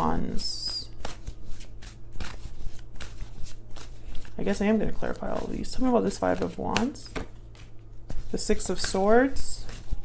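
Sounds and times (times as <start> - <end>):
cards being shuffled by hand: 0.0 - 10.0.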